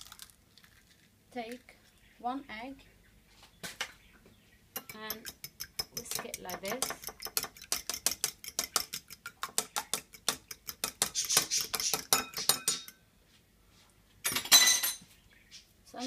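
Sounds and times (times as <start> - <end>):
fork whisking egg in glass bowl: 4.8 - 13.0.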